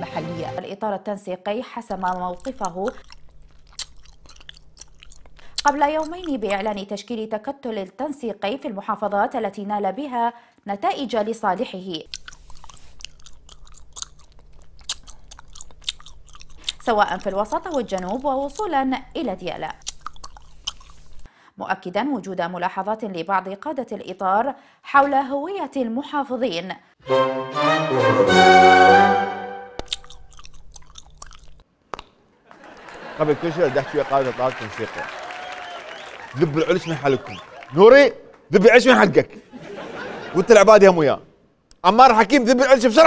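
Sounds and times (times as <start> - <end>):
low room hum: 1.2 - 9.6, 10.5 - 21.4
gum snapping: 1.9 - 6.8, 12.1 - 21.3, 29.8 - 32.3
person chewing gum: 1.9 - 6.8, 12.0 - 21.3, 29.7 - 32.3.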